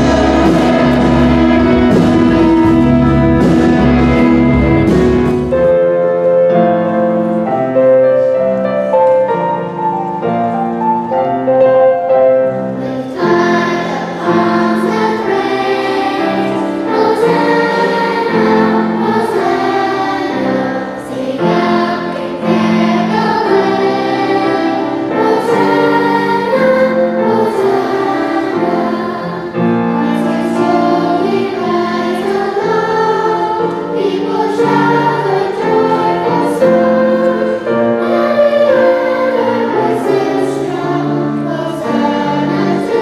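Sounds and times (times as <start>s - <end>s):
children's choir singing a hymn: 0.0s - 43.0s
piano accompaniment: 0.0s - 43.0s.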